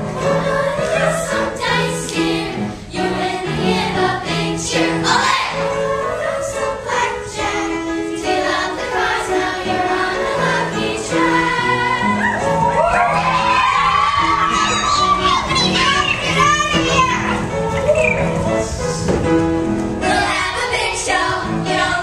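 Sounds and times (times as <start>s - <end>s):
instrumental accompaniment: 0.0s - 22.0s
girls singing together: 0.1s - 15.3s, 20.0s - 22.0s.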